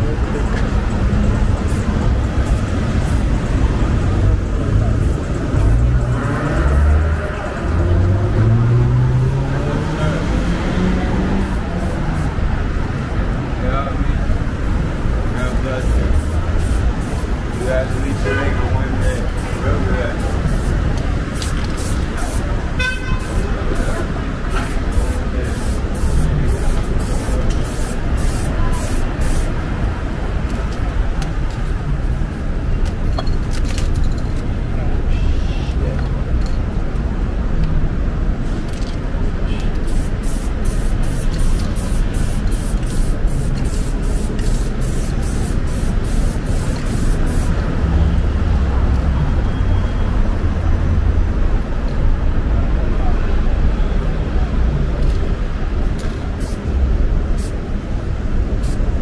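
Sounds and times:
vehicle low rumble: 0:00.0 - 0:22.8
city traffic rumble: 0:00.0 - 0:59.0
spray paint can hissing: 0:01.6 - 0:03.4, 0:15.8 - 0:18.2, 0:19.4 - 0:22.5, 0:23.2 - 0:29.6, 0:39.7 - 0:47.6, 0:55.9 - 0:56.7, 0:57.3 - 0:57.7, 0:58.5 - 0:59.0.

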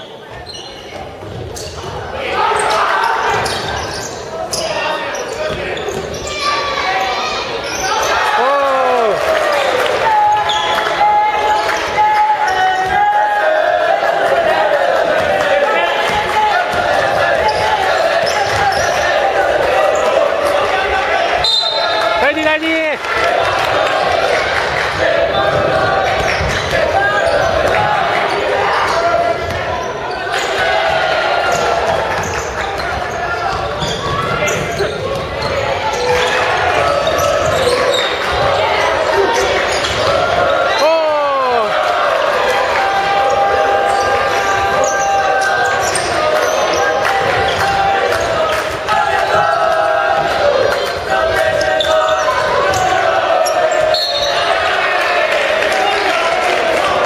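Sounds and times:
sneaker squeaks on floor: 0:00.0 - 0:08.1, 0:10.4 - 0:10.9, 0:17.4 - 0:19.1, 0:21.4 - 0:22.1, 0:25.3 - 0:27.6, 0:31.5 - 0:40.2, 0:53.4 - 0:54.5
voices and shouts: 0:00.0 - 0:57.0.

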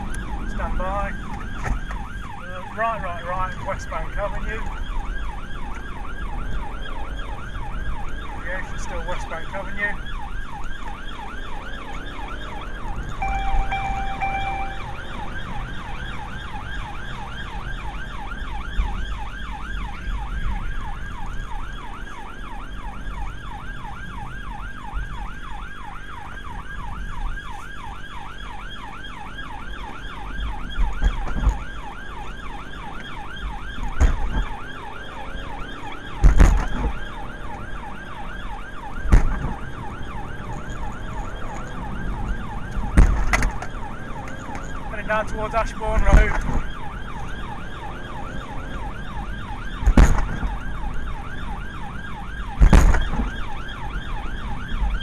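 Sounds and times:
car engine rumble: 0:00.0 - 0:55.0
police siren wailing: 0:00.0 - 0:55.0
car thumping over road humps: 0:36.2 - 0:37.0, 0:49.8 - 0:50.6, 0:52.6 - 0:53.4.

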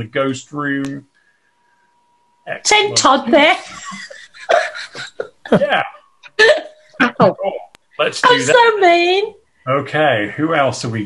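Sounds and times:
person speaking on video call: 0:02.4 - 0:11.0.

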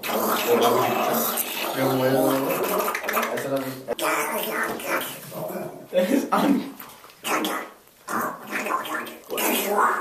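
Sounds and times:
guttural vocal noises: 0:00.0 - 0:05.8, 0:07.2 - 0:10.0.

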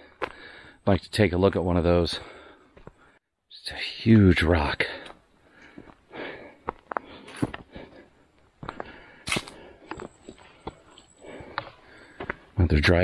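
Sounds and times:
sharp breaths: 0:00.0 - 0:00.8, 0:04.9 - 0:12.6.

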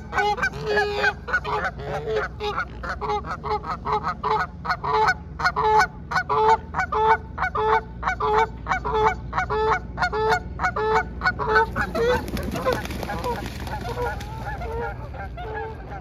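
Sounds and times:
geese honking: 0:00.0 - 0:16.0.

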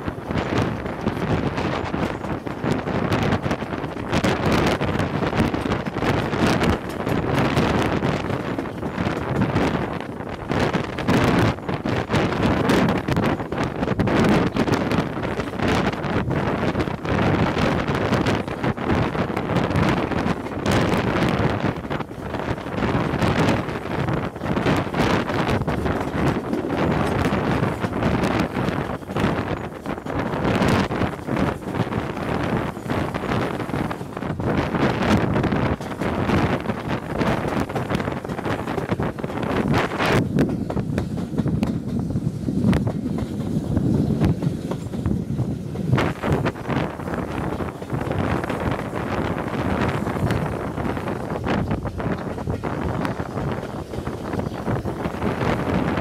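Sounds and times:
steam train running: 0:00.0 - 0:56.0
wind buffeting microphone: 0:00.0 - 0:56.0.

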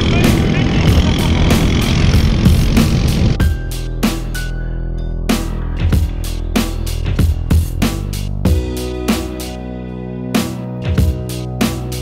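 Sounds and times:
motorcycle tricycle engine: 0:00.0 - 0:03.4
road noise: 0:00.0 - 0:03.4
background music with steady beat: 0:00.1 - 0:12.0.

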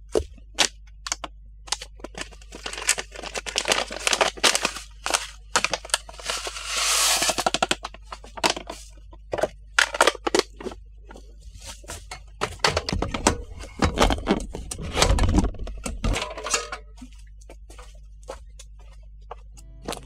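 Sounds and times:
foil packet crinkling: 0:00.4 - 0:09.1
seeds pouring into plastic hopper: 0:05.9 - 0:07.5.

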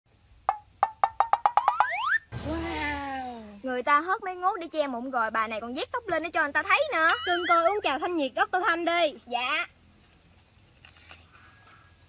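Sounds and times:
wood-block knocks: 0:00.5 - 0:02.0
rising whistle glide: 0:01.7 - 0:03.2.

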